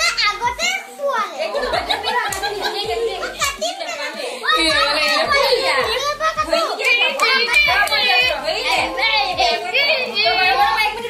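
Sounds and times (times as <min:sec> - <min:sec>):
children talking and calling out: 0:00.0 - 0:11.0
music playing: 0:00.0 - 0:11.0.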